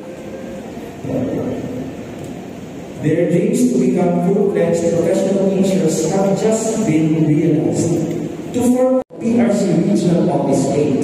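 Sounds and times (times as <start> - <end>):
rumble of crowded hall: 0.0 - 11.0.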